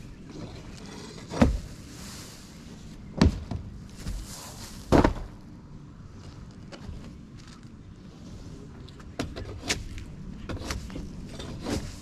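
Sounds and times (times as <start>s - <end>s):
shovel scraping gravel roof: 0.2s - 3.3s, 3.9s - 5.2s, 9.4s - 12.0s.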